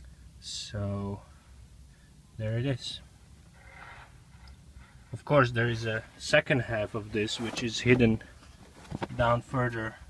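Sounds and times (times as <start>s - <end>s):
soft rustle: 3.2s - 9.7s.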